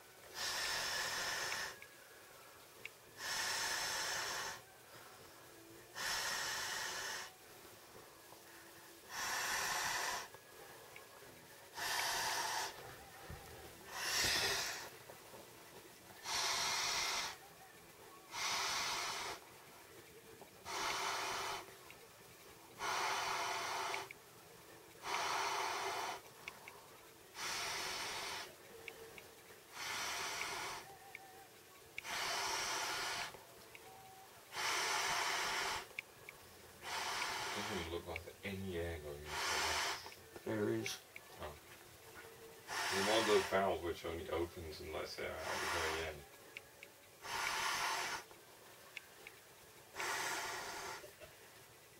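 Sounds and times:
person blowing into valve: 11.7s - 12.9s, 13.9s - 15.0s, 16.2s - 17.5s, 18.3s - 19.4s, 27.3s - 28.5s, 29.7s - 31.2s, 32.0s - 36.0s, 36.8s - 37.9s, 42.7s - 43.7s, 45.4s - 46.1s, 47.2s - 48.4s, 49.9s - 51.3s.

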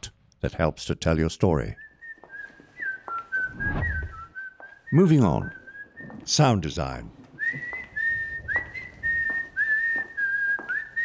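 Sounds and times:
person whistling a slow tune: 1.8s - 6.2s, 7.4s - 11.0s.

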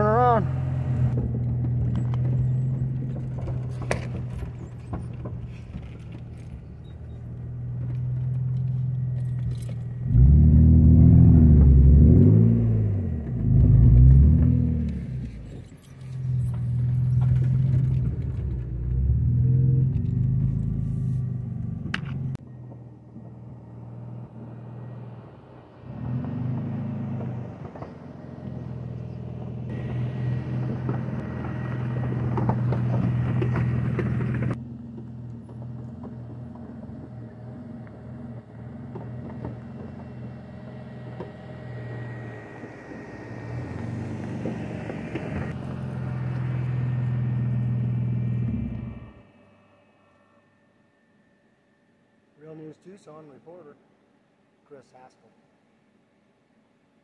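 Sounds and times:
car engine revving: 0.0s - 4.2s, 7.4s - 22.4s, 23.7s - 34.7s, 35.5s - 49.8s.

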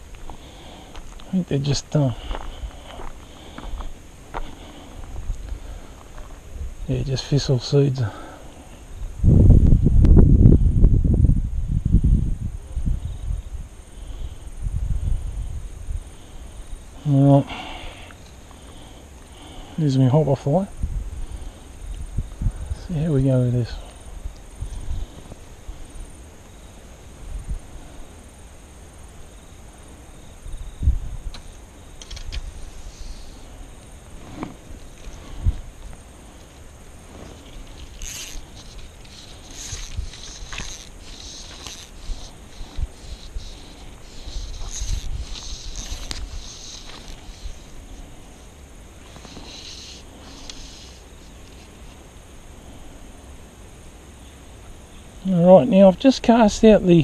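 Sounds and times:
fly line rasping off reel: 31.4s - 48.4s, 49.0s - 52.0s.

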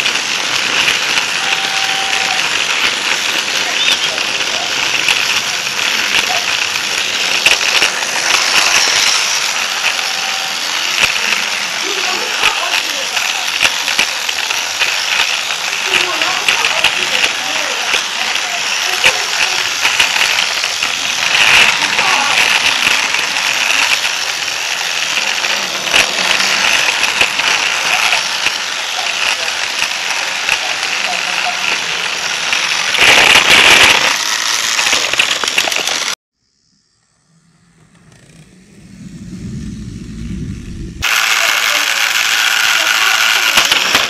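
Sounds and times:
toy train running on track: 0.0s - 38.5s, 41.0s - 44.0s
rattle: 0.0s - 44.0s
low rumble: 36.4s - 41.4s.

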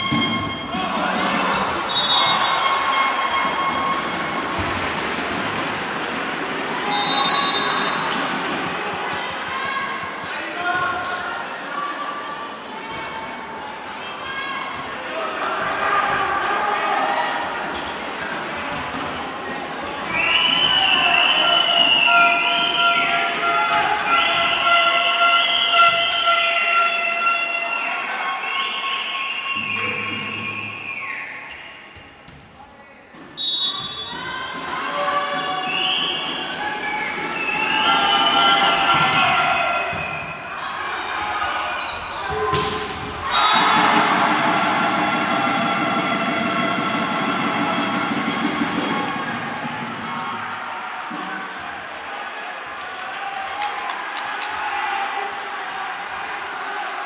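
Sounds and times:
crowd cheering: 0.0s - 31.4s, 34.0s - 57.0s
crowd shouting and chanting: 0.0s - 32.0s, 33.6s - 57.0s.

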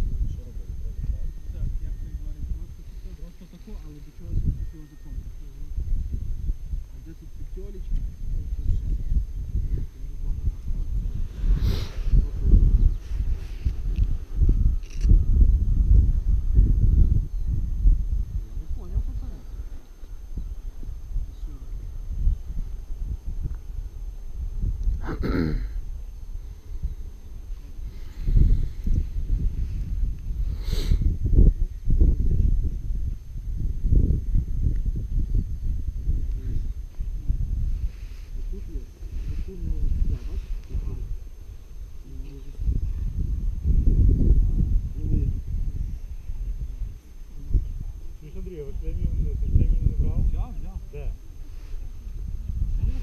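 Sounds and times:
wind buffeting microphone: 0.0s - 53.0s
distant indistinct voices: 0.3s - 14.4s.

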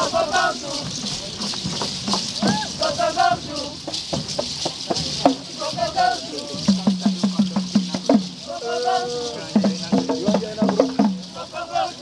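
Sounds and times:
shakers rattling: 0.0s - 12.0s
voices singing call-and-chant: 0.0s - 12.0s.

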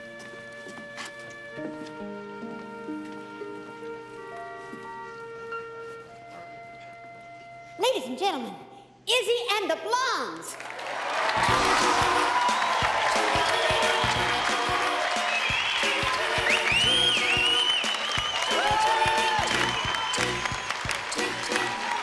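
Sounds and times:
audience applauding and cheering: 10.5s - 22.0s
music with steady beat: 11.4s - 22.0s
whistle: 15.2s - 21.0s.

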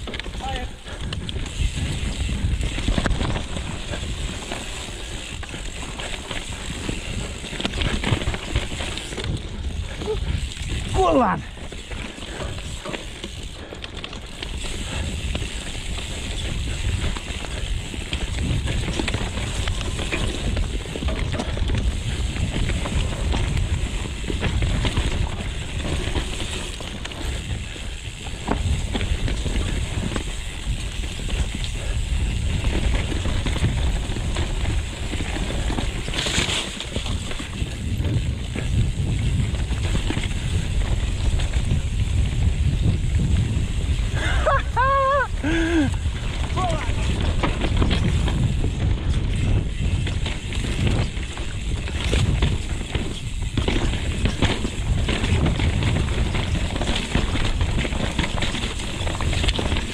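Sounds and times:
bike rattling and clattering: 0.0s - 59.9s
bike tyre noise: 0.0s - 59.9s
wind buffeting microphone: 0.0s - 59.9s.

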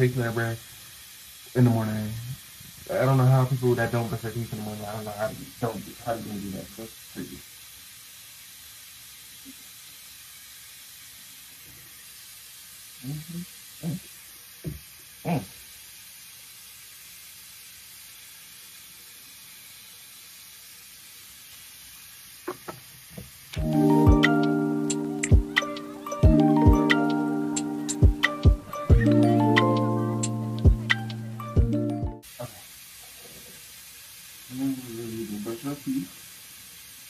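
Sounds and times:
background music: 23.6s - 32.2s
brief pitched notes: 23.6s - 32.2s.

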